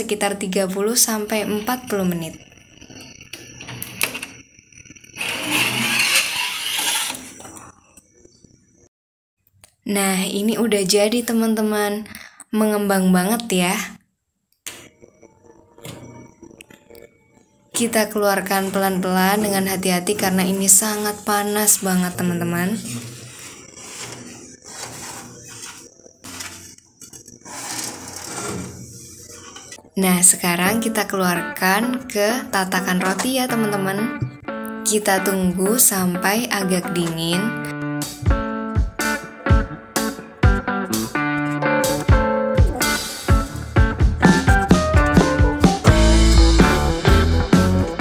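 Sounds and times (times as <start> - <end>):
metal door scraping open: 5.2 - 7.6, 22.8 - 26.8, 27.4 - 29.8
cloth rubbing on metal: 22.8 - 26.8, 27.4 - 29.5.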